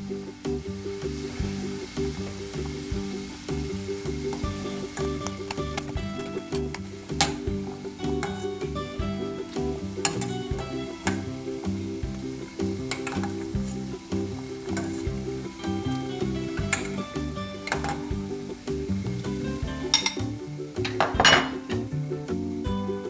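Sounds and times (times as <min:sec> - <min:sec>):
background music: 0:00.0 - 0:23.0
water boiling: 0:00.0 - 0:23.0
metal ladle clinking on pot: 0:10.0 - 0:11.3, 0:17.6 - 0:18.1, 0:19.9 - 0:21.8
clatter and splash: 0:12.5 - 0:15.8.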